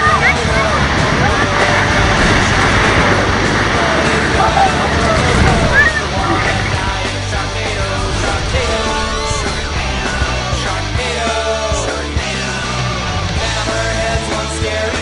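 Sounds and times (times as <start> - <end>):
young people shouting and squealing: 0.0 - 1.8, 4.2 - 6.9
ocean surf breaking: 0.0 - 15.0
wave crashing: 0.0 - 15.0.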